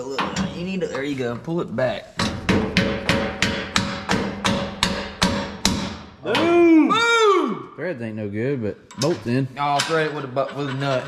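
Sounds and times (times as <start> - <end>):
soft-faced hammer striking a bolt: 2.2 - 6.1.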